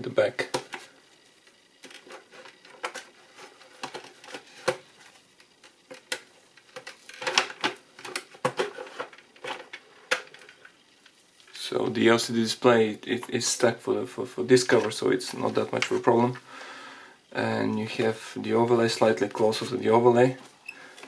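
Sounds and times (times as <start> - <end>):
plastic parts clicking and knocking: 0.4 - 0.9, 1.8 - 11.2.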